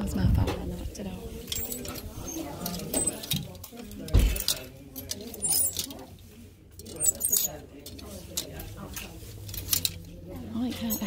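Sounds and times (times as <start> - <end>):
murmur of voices: 0.0 - 11.0
plastic hangers clacking on metal rail: 1.3 - 11.0.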